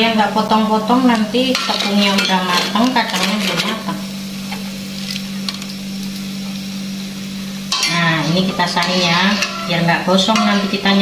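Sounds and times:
batter sizzling in hot oil: 0:01.1 - 0:11.0.

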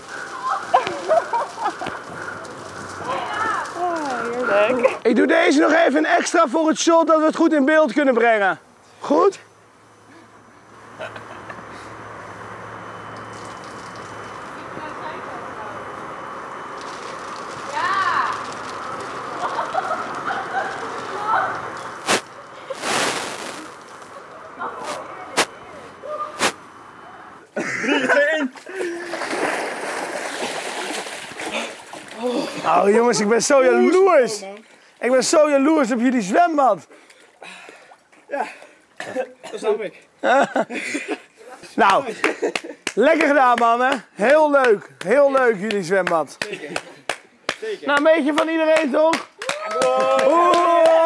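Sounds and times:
beer splashing on plastic bag: 0:00.0 - 0:05.0, 0:13.2 - 0:14.8, 0:16.2 - 0:24.2, 0:28.8 - 0:32.7
water sloshing in pool: 0:28.5 - 0:32.7.

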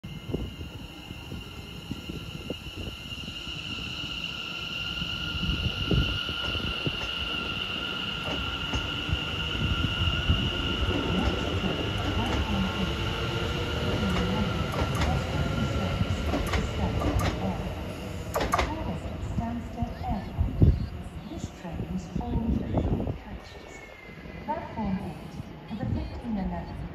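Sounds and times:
electric train high-pitched whine: 0:00.0 - 0:25.5
train wheels rumbling and clicking: 0:08.2 - 0:20.0.

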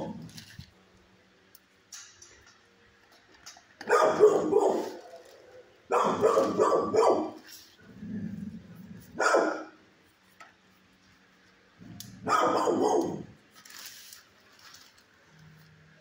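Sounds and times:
dog barking: 0:03.8 - 0:05.0, 0:05.9 - 0:07.4, 0:09.2 - 0:09.8, 0:12.2 - 0:13.4.

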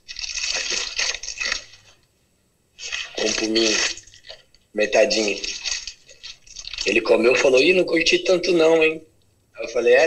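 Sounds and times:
plastic bag crinkling: 0:00.0 - 0:02.0, 0:02.8 - 0:07.6.

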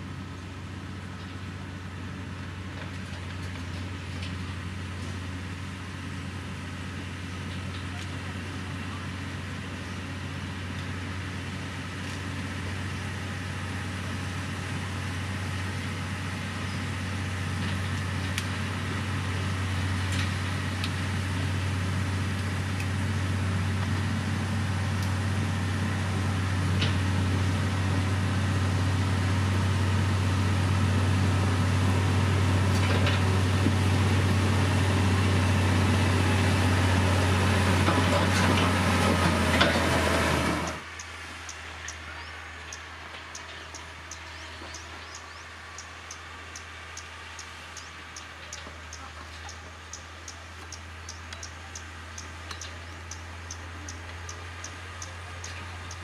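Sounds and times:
diesel engine droning: 0:00.0 - 0:56.0
faint clicks: 0:45.8 - 0:56.0.

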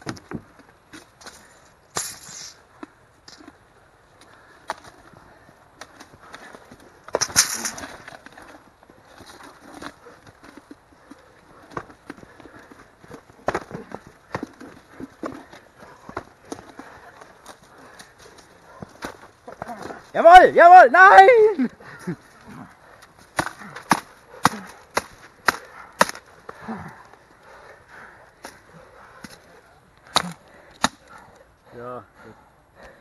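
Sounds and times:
bodies pressing together: 0:04.2 - 0:20.2.

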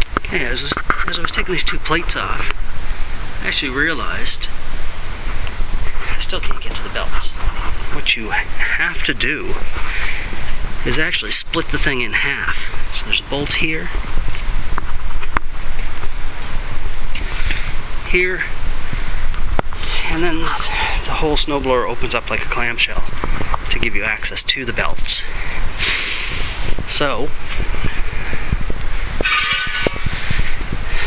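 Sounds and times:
low rumbling on microphone: 0:00.0 - 0:31.0.

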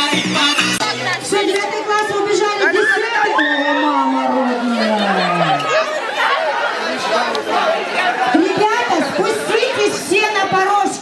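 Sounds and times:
crowd of teenagers chattering: 0:00.0 - 0:11.0.

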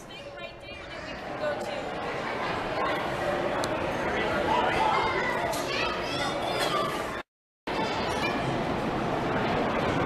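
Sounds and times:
children playing and calling out: 0:04.6 - 0:08.6.

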